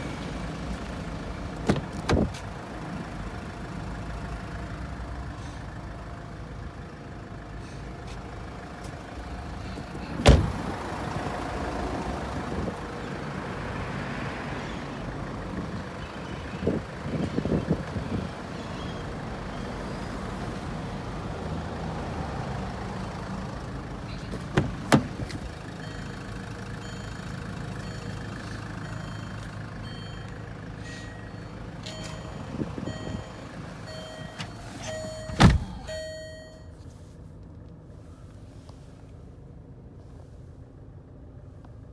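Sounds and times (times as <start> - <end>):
car engine idling: 0.0 - 13.4, 22.8 - 41.8
car door slams: 1.6 - 2.4, 10.2 - 10.6, 24.3 - 25.4, 34.2 - 35.9
beeping tone: 27.8 - 36.8.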